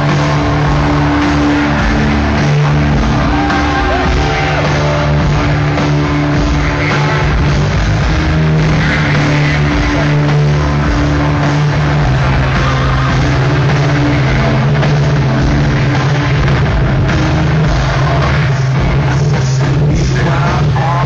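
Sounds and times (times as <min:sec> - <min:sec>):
live metal band playing: 0:00.0 - 0:21.0.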